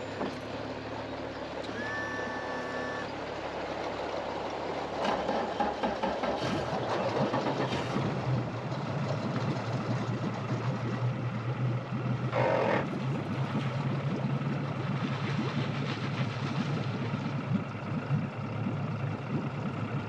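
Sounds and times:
outboard motor humming: 0:00.0 - 0:20.0.

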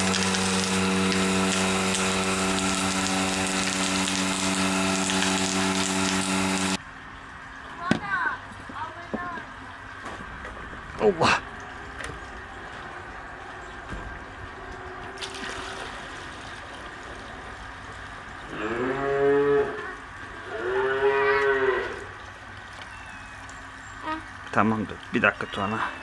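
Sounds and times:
cattle mooing: 0:18.5 - 0:22.1.

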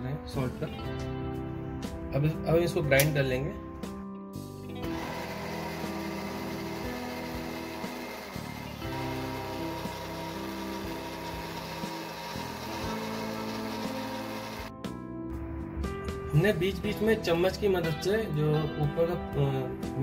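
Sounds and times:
guitar music: 0:02.9 - 0:16.3
electric mixer grinder running: 0:04.8 - 0:14.7.

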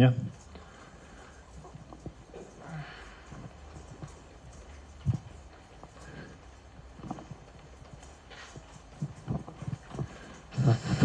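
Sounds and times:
broken breaths: 0:00.4 - 0:11.0.

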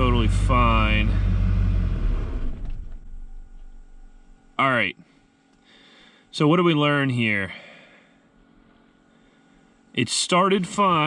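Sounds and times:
diesel engine idling and stalling: 0:00.0 - 0:04.5.

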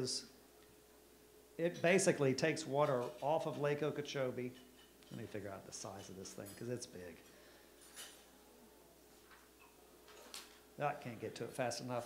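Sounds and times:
man speaking: 0:01.6 - 0:07.2, 0:10.8 - 0:12.0.

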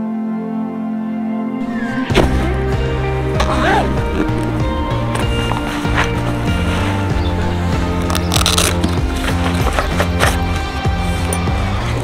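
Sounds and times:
background music with bass and beat: 0:01.6 - 0:12.0.

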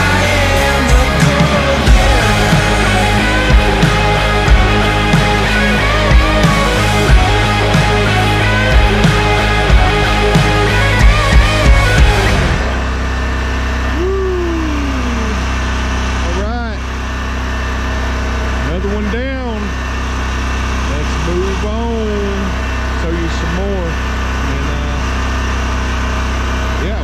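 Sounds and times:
lawn mower engine running: 0:00.0 - 0:27.0
voice-like pitch sound: 0:13.7 - 0:16.9.

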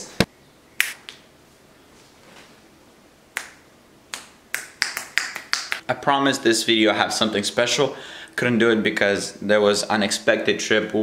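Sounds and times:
short sharp clicks: 0:00.8 - 0:01.2.

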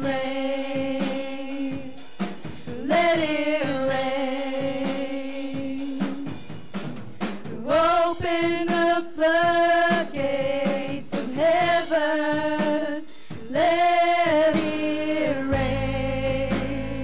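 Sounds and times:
women singing worship song: 0:00.0 - 0:06.6, 0:07.2 - 0:17.0.

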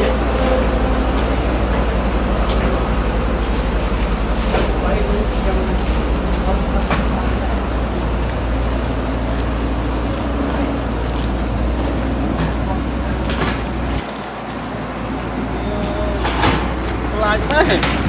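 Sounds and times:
engine running: 0:00.0 - 0:18.0.

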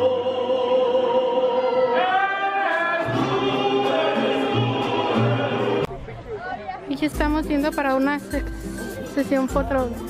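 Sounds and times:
mariachi band playing: 0:00.0 - 0:05.9, 0:07.0 - 0:10.0
voices singing: 0:00.0 - 0:05.9.

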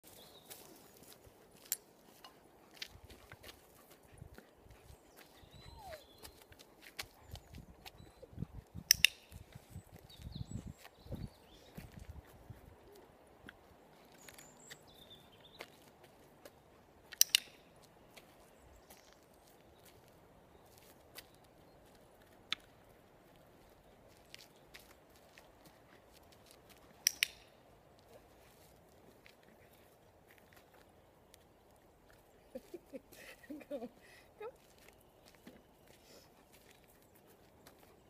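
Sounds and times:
footsteps on gravel: 0:00.0 - 0:05.3
sharp clicks: 0:08.8 - 0:09.4, 0:17.1 - 0:17.6, 0:27.0 - 0:27.5.

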